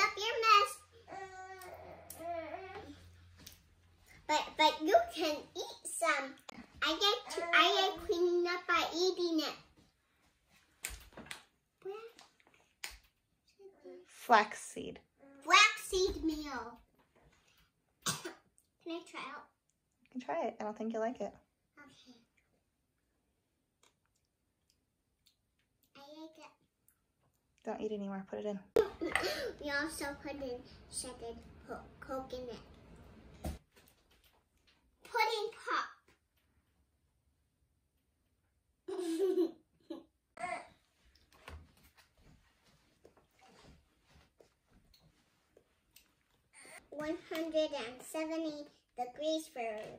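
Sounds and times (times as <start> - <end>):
child speaking: 0.0 - 3.0, 4.3 - 9.7, 15.2 - 16.8, 18.8 - 19.5, 29.2 - 32.7, 35.0 - 36.1, 46.7 - 49.9.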